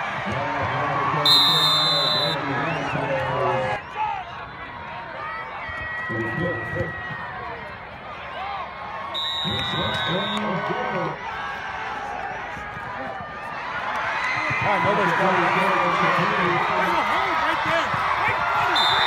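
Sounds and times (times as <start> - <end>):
crowd shouting and cheering: 0.0 - 19.0
referee's whistle: 1.2 - 3.1, 9.2 - 10.5, 18.6 - 19.0.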